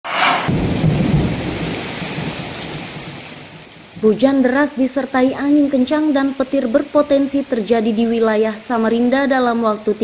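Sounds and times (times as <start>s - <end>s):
thunderclap: 0.0s - 3.2s.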